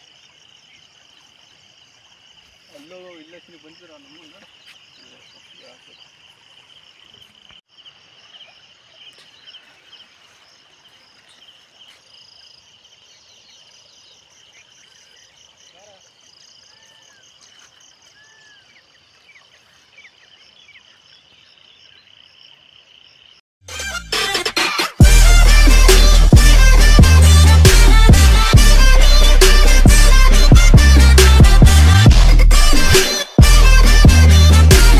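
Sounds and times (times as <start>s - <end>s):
insects chirring: 0.0s - 23.4s
loud music: 23.6s - 34.9s.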